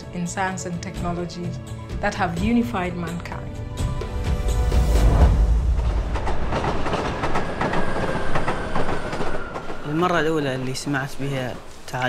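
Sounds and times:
train whine: 4.1s - 11.9s
train wheels clattering on rails: 5.6s - 12.0s.

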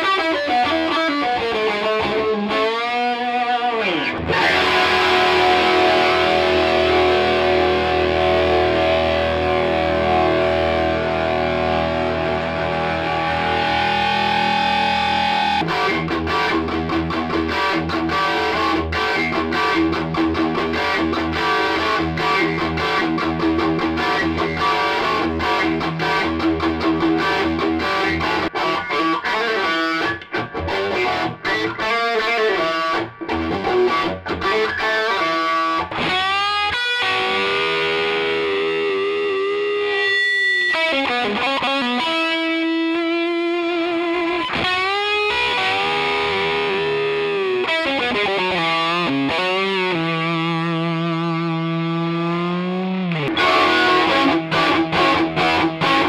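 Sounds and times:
distorted electric guitar: 0.0s - 56.0s.

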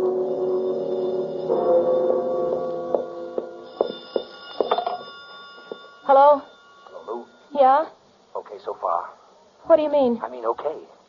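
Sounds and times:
gong-like music sting: 0.0s - 3.8s
high steady tones: 0.0s - 8.4s.

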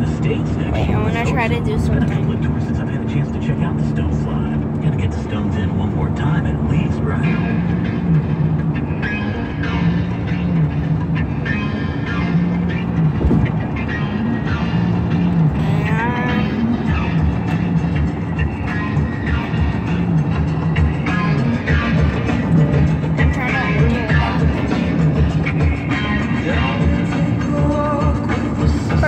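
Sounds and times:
car radio music: 0.0s - 29.0s
road noise: 0.0s - 29.0s.

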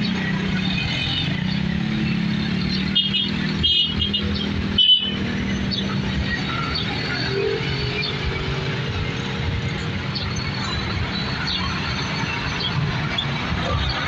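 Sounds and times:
road traffic passing: 0.0s - 14.0s.

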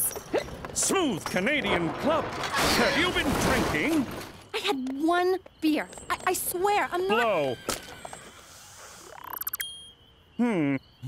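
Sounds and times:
breathy hiss of blowing: 8.2s - 9.2s
short high electronic beep: 9.1s - 10.1s.

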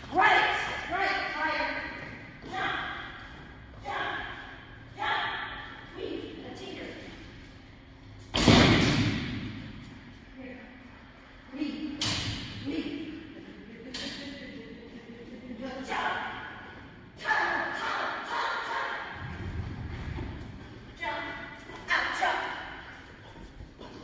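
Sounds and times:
voices echoing in a hall: 0.0s - 8.2s, 9.0s - 24.0s.

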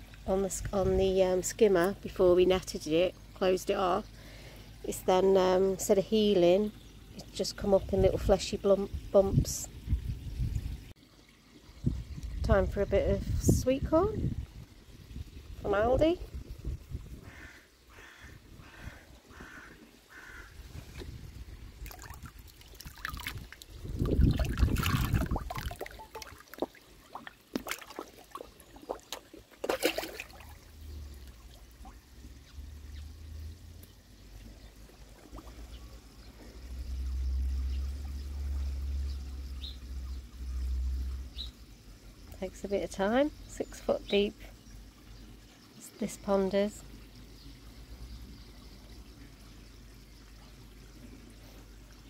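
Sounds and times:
pond water splashing and trickling: 0.0s - 52.0s.

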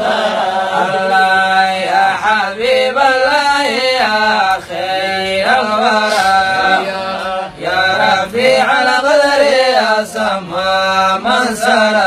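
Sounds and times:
man chanting into microphone: 0.0s - 12.0s.

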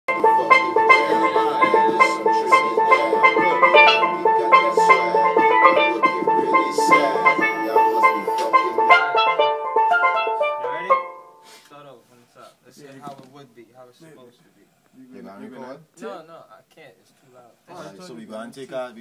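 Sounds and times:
steelpan rhythmic melody: 0.1s - 11.5s.

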